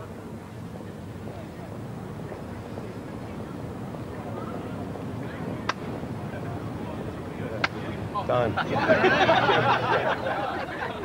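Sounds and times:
faint murmuring voices: 0.0 - 11.0
traffic hum: 0.0 - 11.0.

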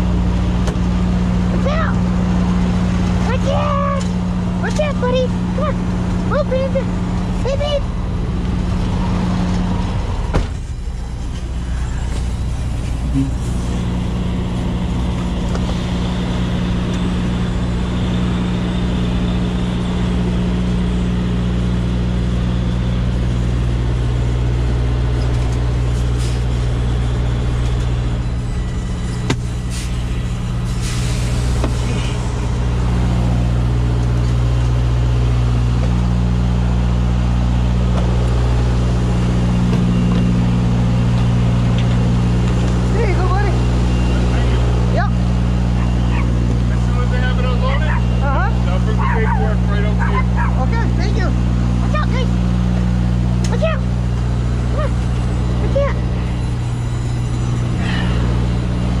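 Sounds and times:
diesel truck engine idling: 0.0 - 59.0
brief air hiss: 29.7 - 30.0, 30.7 - 31.9.

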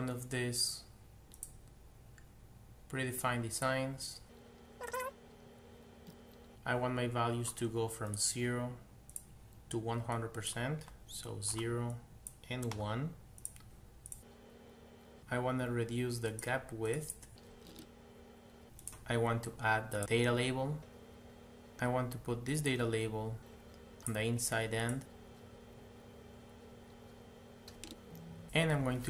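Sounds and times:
computer mouse clicks: 1.3 - 1.6, 13.4 - 14.3.

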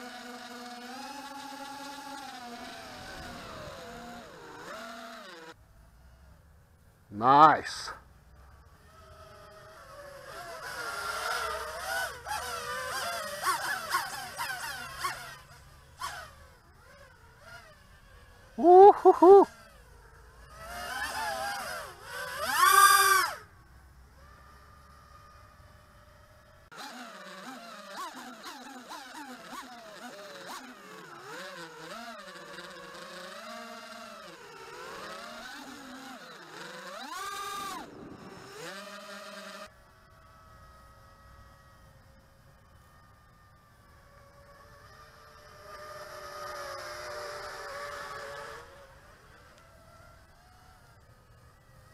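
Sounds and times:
quadcopter motors whining: 0.0 - 51.9.

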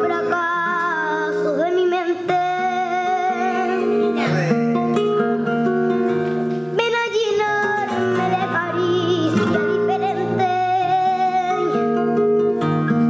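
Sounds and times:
girl singing flamenco style: 0.0 - 4.2, 6.4 - 13.0
acoustic guitar: 0.0 - 13.0.

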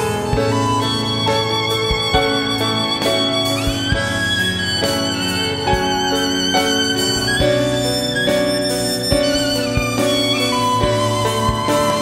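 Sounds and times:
piano accompaniment: 0.0 - 12.0
violin melody: 0.0 - 12.0.

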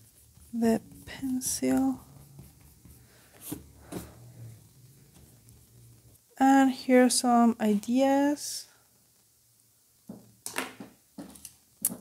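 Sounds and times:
eraser rubbing on paper: 0.0 - 4.2.

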